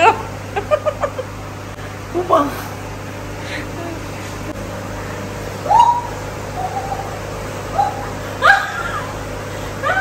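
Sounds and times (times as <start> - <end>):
woman squealing with laughter: 7.7 - 10.0.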